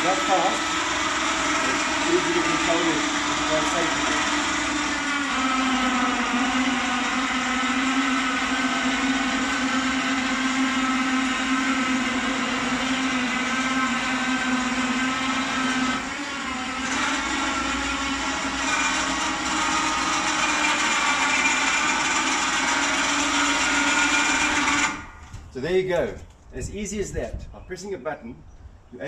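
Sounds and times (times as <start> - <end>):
electric motors whining: 0.0 - 25.5.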